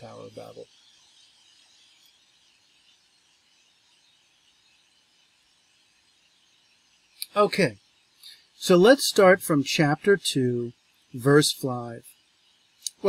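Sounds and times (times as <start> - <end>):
faint room hiss: 0.0 - 13.0.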